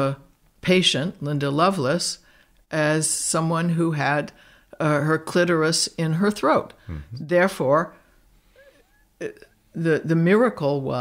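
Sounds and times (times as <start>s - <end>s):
woman speaking: 0.0s - 8.0s, 9.2s - 11.0s
throat or breath sound: 6.8s - 7.2s.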